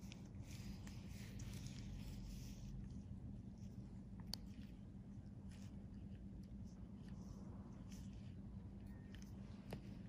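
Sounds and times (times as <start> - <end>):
soft rustling hiss: 0.0 - 10.0
steady low hum: 0.0 - 10.0.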